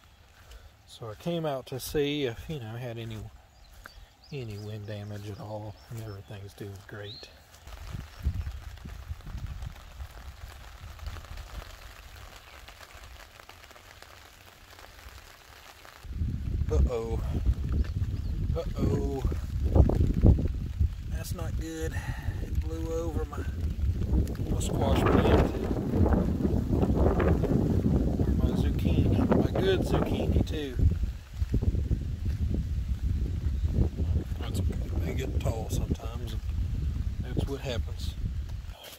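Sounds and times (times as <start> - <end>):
raindrops pattering on fabric canopy: 0.0 - 38.9
wind rumbling on microphone: 1.8 - 13.5, 15.9 - 38.8.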